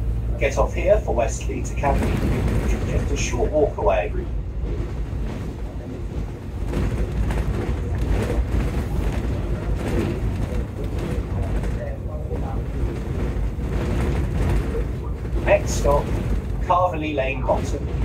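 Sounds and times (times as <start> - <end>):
bus engine and road rumble: 0.0 - 18.0
knocks and rattles: 1.7 - 3.6, 4.6 - 18.0.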